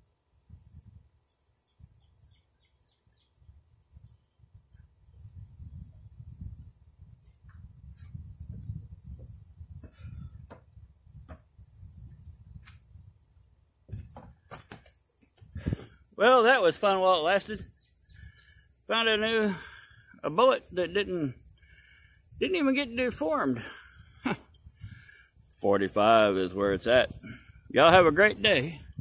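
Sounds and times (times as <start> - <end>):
faint bird chirps: 0.3 - 5.8, 17.5 - 22.4.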